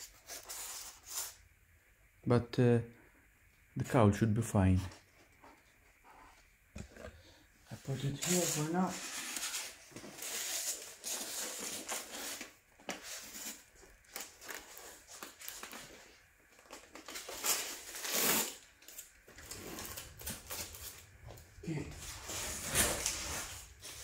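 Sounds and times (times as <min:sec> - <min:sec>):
plastic wrap crinkling: 0:07.9 - 0:21.2.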